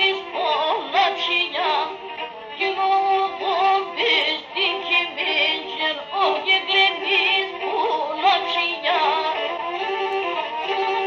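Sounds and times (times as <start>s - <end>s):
bowed lyra dance melody: 0.0s - 11.0s.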